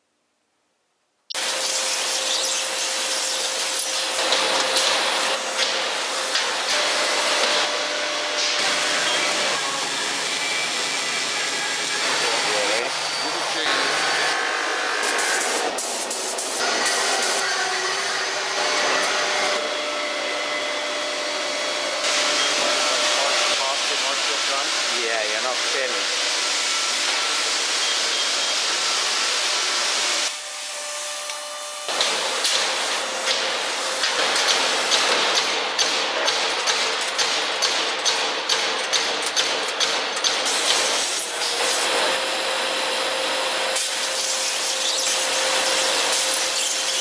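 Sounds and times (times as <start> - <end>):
metal-shop machinery and power tools: 1.3 - 47.0.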